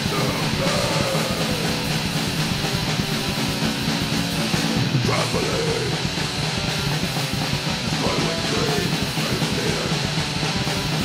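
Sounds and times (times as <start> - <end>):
crust punk grind song: 0.0 - 11.0.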